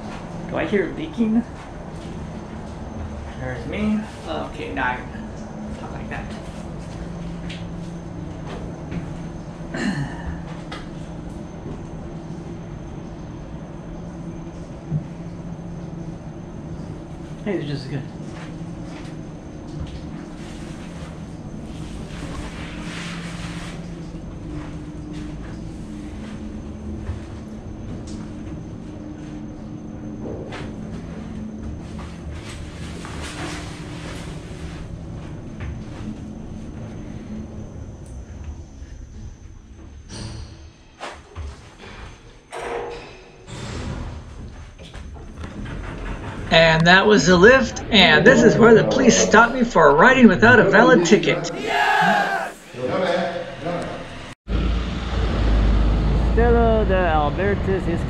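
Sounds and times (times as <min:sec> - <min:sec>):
elevator running hum: 0:00.0 - 0:54.4
elevator sliding doors opening: 0:39.9 - 0:49.2.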